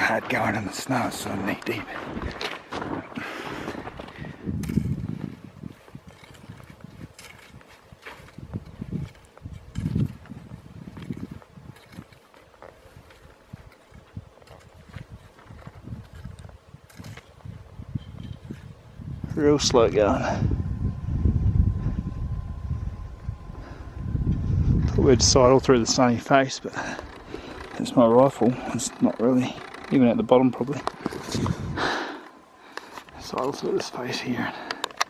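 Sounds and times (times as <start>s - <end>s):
footsteps crunching through snow: 0.0s - 19.2s.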